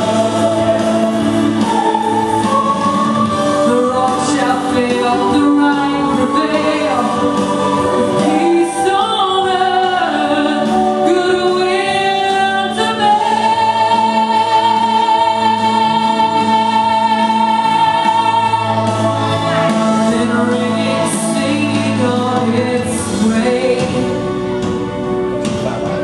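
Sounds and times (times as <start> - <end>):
girls singing slow song: 0.0 - 24.2
musical accompaniment: 0.0 - 26.0.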